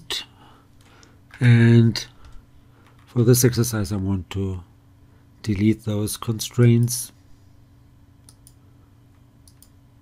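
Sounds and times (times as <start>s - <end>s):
low steady hum: 0.0s - 10.0s
computer mouse clicks: 8.2s - 8.6s, 9.4s - 9.8s.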